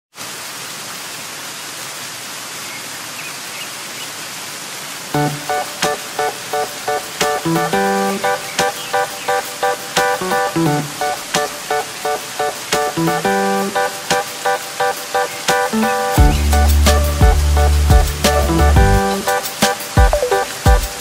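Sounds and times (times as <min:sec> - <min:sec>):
waterfall rushing: 0:00.2 - 0:21.0.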